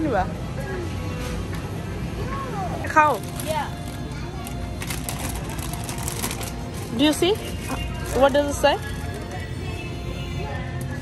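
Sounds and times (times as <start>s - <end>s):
background music: 0.0s - 11.0s
plastic chip bag crinkling: 3.1s - 9.4s.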